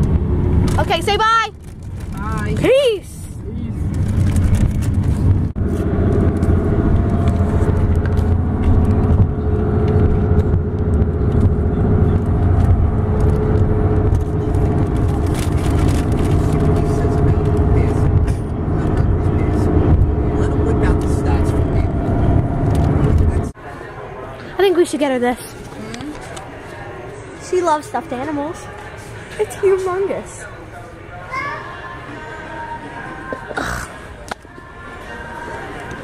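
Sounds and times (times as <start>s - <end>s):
car engine and road rumble: 0.0s - 24.2s.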